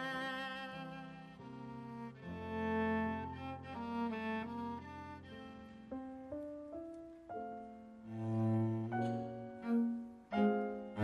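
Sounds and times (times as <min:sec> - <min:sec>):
bowed cello notes: 0:00.0 - 0:11.0
piano: 0:00.0 - 0:11.0.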